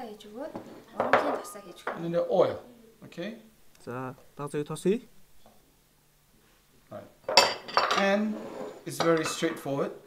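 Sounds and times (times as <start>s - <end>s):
ceramic bowl clinking on stone: 7.3s - 8.1s.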